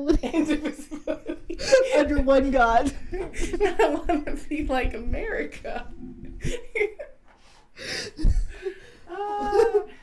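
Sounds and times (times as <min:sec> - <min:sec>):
women laughing: 0:00.0 - 0:02.2, 0:02.9 - 0:04.5, 0:06.4 - 0:07.2, 0:08.2 - 0:10.0
sharp gasping breath: 0:07.4 - 0:09.1.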